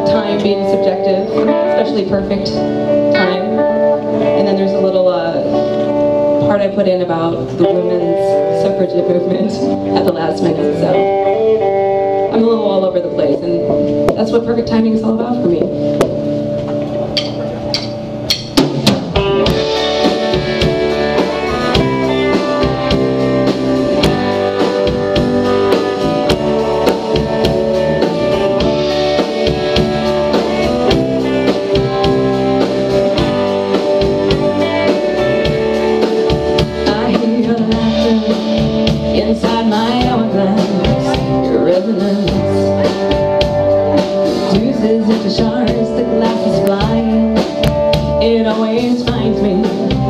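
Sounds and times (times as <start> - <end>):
rock band playing: 0.0 - 50.0
drum hits: 17.2 - 39.2.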